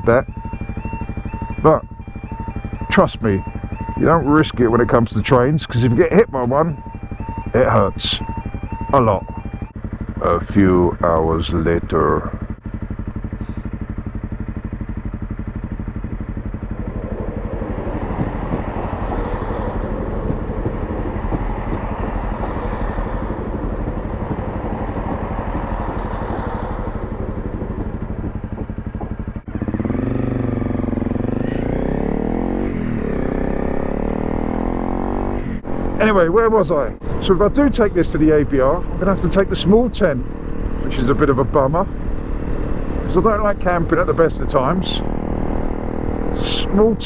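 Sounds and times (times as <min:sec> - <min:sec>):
motorcycle engine idling and revving: 0:00.0 - 0:47.0.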